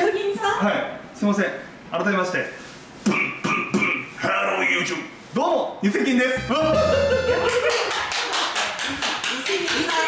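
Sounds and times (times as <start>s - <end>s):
people laughing: 6.6s - 8.6s
hands clapping quickly: 7.4s - 10.0s.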